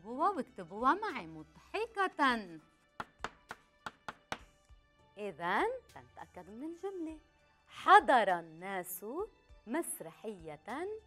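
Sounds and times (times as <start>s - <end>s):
faint background music: 0.0s - 11.0s
chalk tapping on blackboard: 3.0s - 4.5s.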